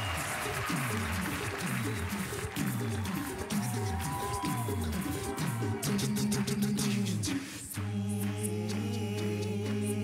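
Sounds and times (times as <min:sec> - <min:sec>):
beatboxed vocal percussion: 0:00.0 - 0:10.0
vocal bass line: 0:00.6 - 0:10.0.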